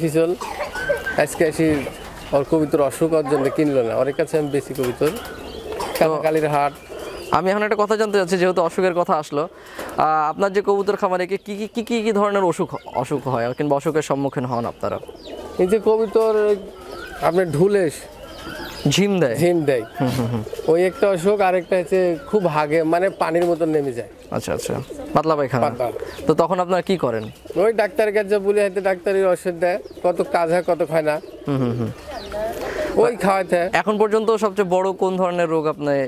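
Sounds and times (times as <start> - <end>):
man talking: 0.0 - 0.4, 1.1 - 5.2, 6.0 - 18.2, 18.8 - 32.0, 33.0 - 36.0
pigeons cooing: 0.0 - 36.0.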